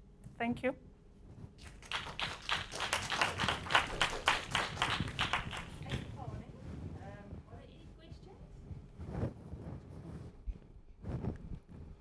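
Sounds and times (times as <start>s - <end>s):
audience applauding: 1.6s - 5.9s.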